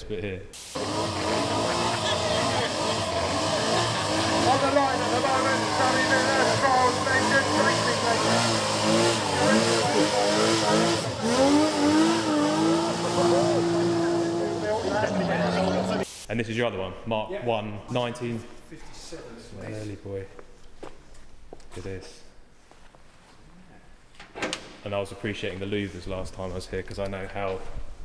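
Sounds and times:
car engine revving hard: 0.8 - 16.0
tyres spinning: 0.8 - 16.0.

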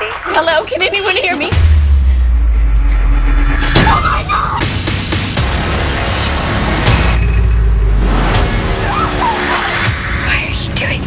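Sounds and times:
sharp hit: 1.5 - 8.9
deep rumble drone: 1.5 - 9.0.

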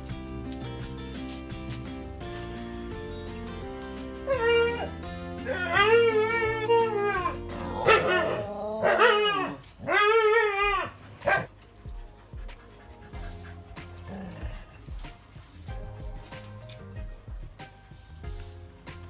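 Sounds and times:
dog howling: 4.2 - 11.5.

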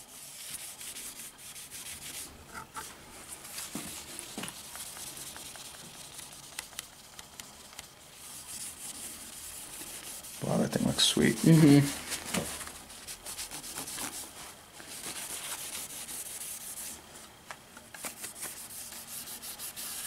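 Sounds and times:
paper towel scrubbing wood: 0.0 - 2.3, 3.2 - 17.0, 18.0 - 20.0.

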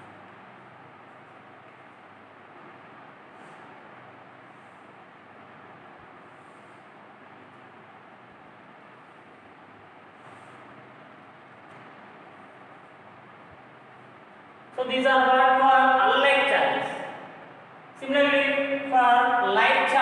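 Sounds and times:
low hiss of room noise: 0.0 - 20.0.

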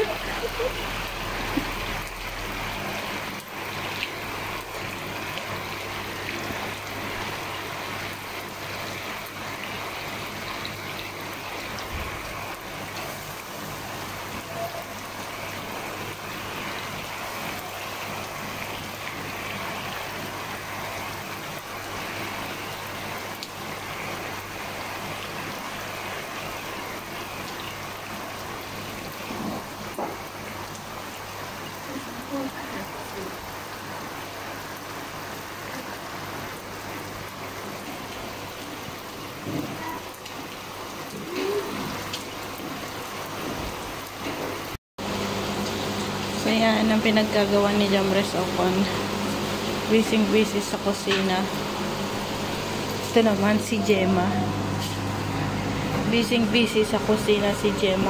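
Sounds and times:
rain falling on pool and ground: 0.0 - 58.0.

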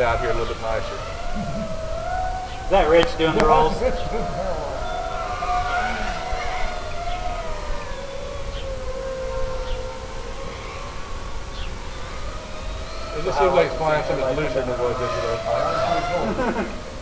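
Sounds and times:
drone propellers whining: 0.0 - 17.0.

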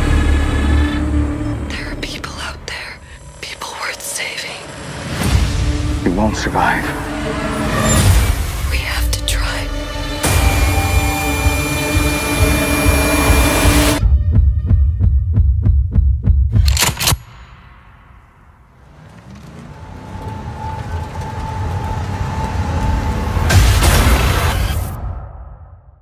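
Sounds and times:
loud sustained drone: 10.2 - 14.0
heavy heartbeat-like pulses: 10.2 - 16.6.

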